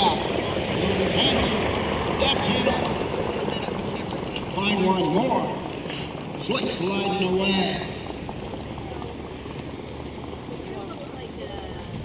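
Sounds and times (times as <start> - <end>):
outdoor background noise: 0.0 - 12.0
faint indistinct voices: 8.5 - 12.0.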